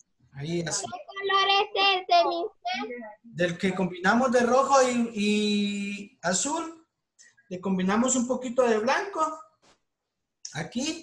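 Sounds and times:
child speaking sing-song: 0.8s - 3.2s.

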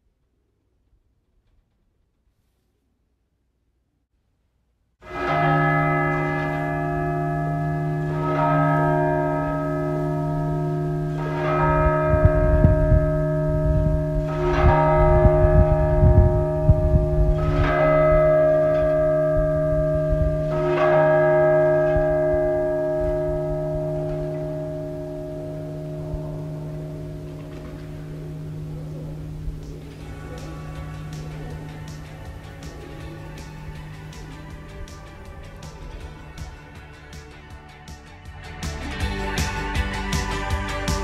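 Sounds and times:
church bell tolling: 5.0s - 37.0s
low rumble: 10.7s - 20.8s.

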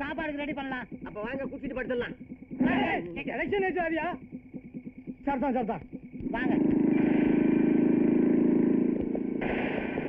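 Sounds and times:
vehicle engine running loudly: 6.4s - 9.5s.

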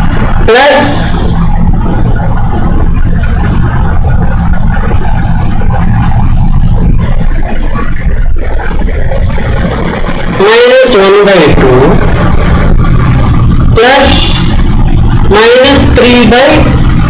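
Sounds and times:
low hum: 0.0s - 17.0s
rumbling noise: 0.0s - 17.0s.

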